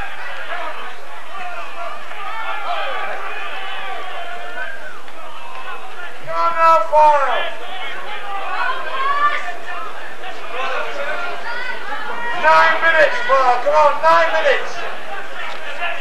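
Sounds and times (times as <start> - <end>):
men calling out and chatting: 0.0 - 16.0.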